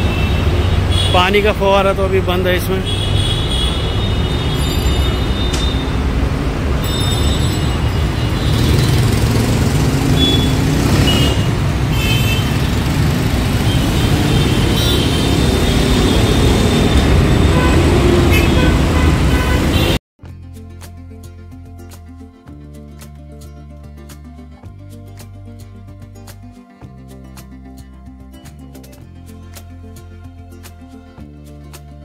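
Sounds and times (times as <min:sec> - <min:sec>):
road traffic rumble: 0:00.0 - 0:20.0
background music: 0:20.2 - 0:32.0.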